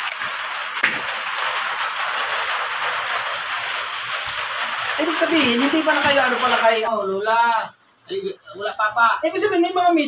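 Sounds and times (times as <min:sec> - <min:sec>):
heavy rain: 0:00.0 - 0:10.0.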